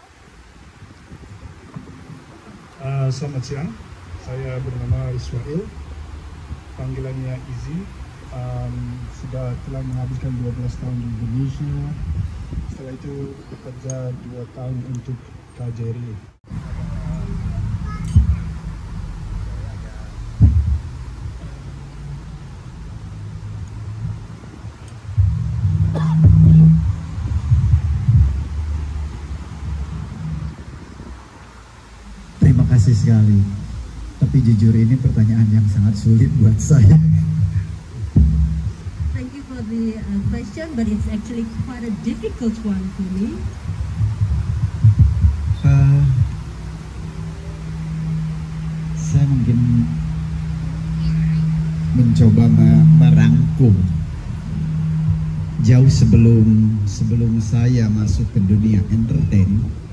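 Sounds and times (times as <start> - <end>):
low uneven rumble: 0.0 - 59.9
steady low-pitched hum: 0.0 - 59.9
sharp thump: 17.1 - 21.7, 36.7 - 39.2.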